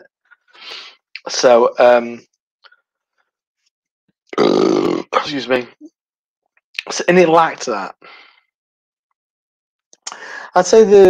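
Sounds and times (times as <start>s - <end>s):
man belching: 4.3s - 5.2s.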